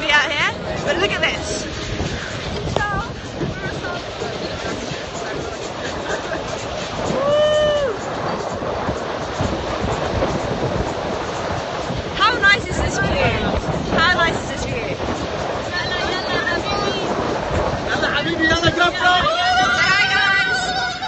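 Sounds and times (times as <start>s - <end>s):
water rushing along hull: 0.0s - 21.0s
wind buffeting microphone: 0.0s - 21.0s.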